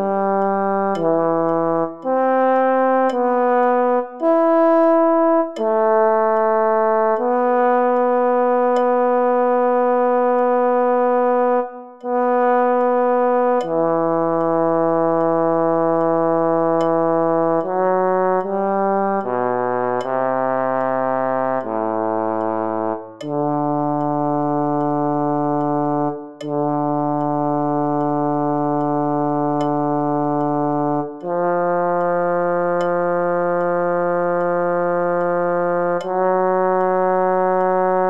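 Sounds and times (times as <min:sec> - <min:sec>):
low brass-like synthesizer note: 0:00.0 - 0:38.0.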